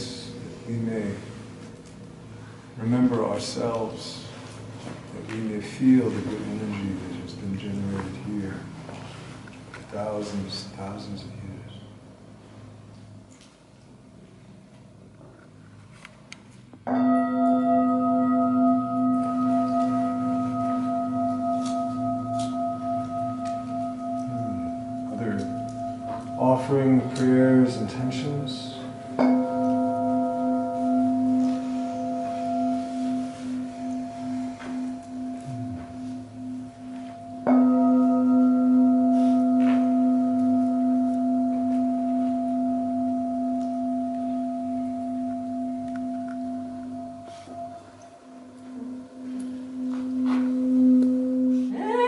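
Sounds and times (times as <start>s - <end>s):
mallet striking bowl: 16.9s - 28.1s, 48.8s - 51.8s
singing bowl ringing: 16.9s - 52.0s.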